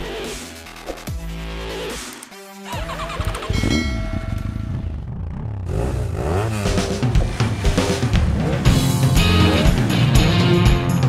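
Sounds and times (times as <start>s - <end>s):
engine revving: 2.7s - 11.0s.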